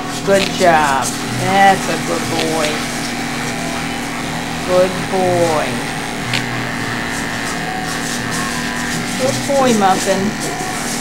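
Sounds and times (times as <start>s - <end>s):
electric clippers humming: 0.0s - 11.0s.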